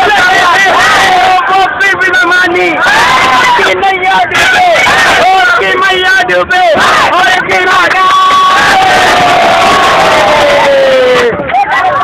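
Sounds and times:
group of voices chanting: 6.7 - 9.0.

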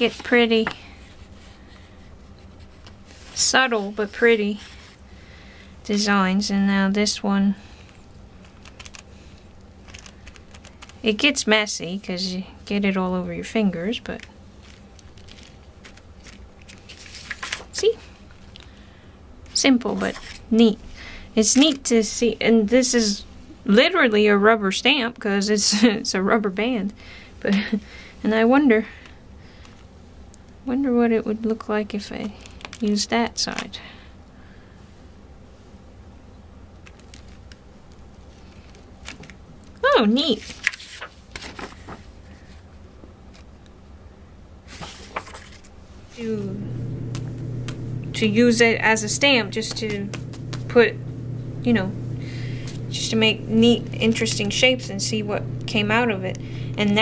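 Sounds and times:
paper rustling: 7.8 - 11.1, 14.0 - 18.8, 40.2 - 42.6, 44.7 - 46.2
hands rubbing paper: 8.4 - 11.3, 44.7 - 57.0
low steady hum: 41.5 - 57.0.

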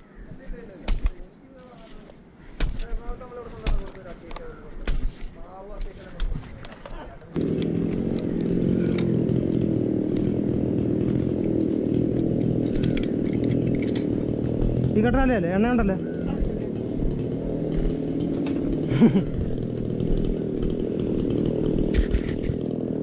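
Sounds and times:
climbing spikes knocking into bark: 2.6 - 22.6
small engine running: 7.4 - 23.0.

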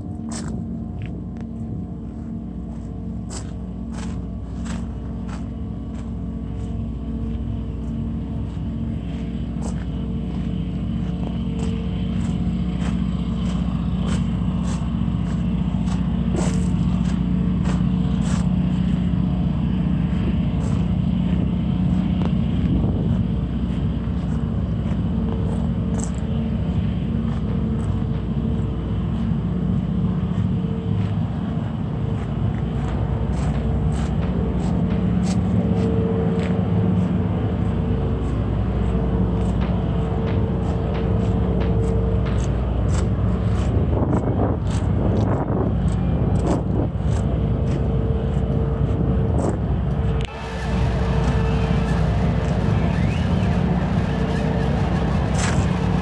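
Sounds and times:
ambient drone music: 0.0 - 56.0.

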